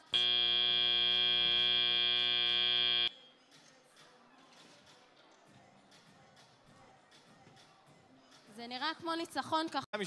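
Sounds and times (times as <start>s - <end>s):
loud steady buzzer: 0.0s - 3.1s.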